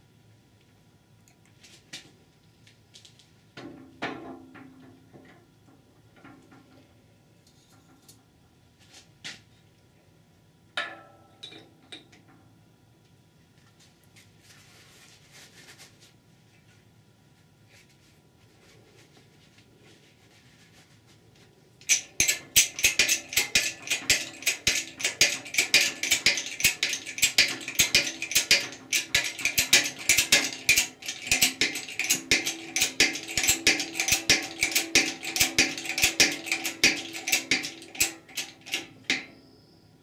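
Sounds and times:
faint metallic ringing: 10.8 - 12.6
hydraulic jack pump clicking: 21.8 - 39.3.

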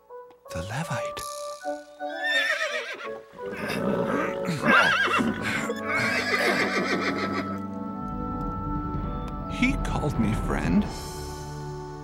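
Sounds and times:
soft background music: 0.0 - 12.0
horse whinnying: 2.2 - 7.6.

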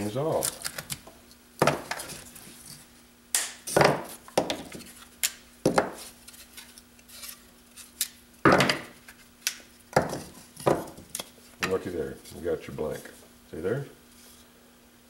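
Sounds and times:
wood pieces knocking: 1.6 - 2.1, 8.4 - 9.0, 9.9 - 11.0.

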